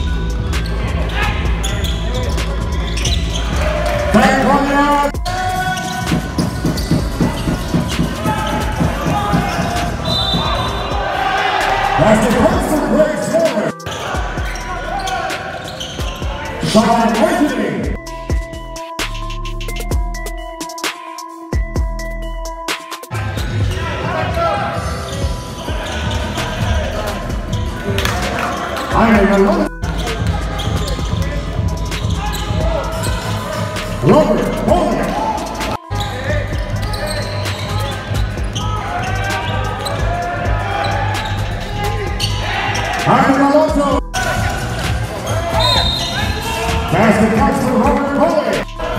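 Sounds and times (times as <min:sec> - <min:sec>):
players calling out: 0:00.0 - 0:18.0, 0:23.1 - 0:48.9
background music with bass beat: 0:00.0 - 0:23.9, 0:25.2 - 0:48.9
basketball dribbling: 0:05.2 - 0:10.8.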